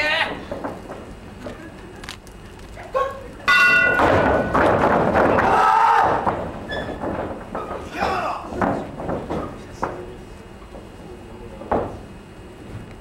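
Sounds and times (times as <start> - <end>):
ring bell: 3.5 - 4.0
crowd shouting and cheering: 5.2 - 6.4.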